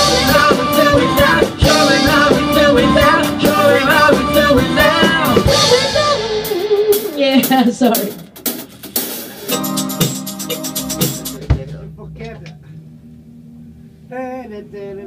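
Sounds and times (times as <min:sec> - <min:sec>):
person singing: 0:00.0 - 0:07.2
drum kit: 0:00.0 - 0:13.3
keyboards: 0:00.0 - 0:14.2
guitar: 0:00.0 - 0:15.0.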